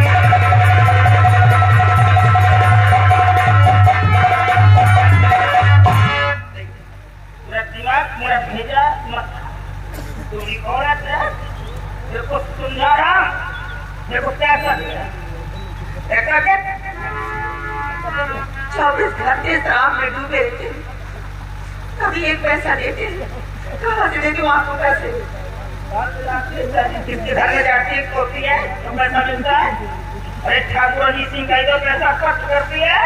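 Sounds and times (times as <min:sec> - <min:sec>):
rapid low drumming: 0:00.0 - 0:07.5
steady low hum: 0:00.0 - 0:33.0
sustained high note: 0:13.2 - 0:19.8.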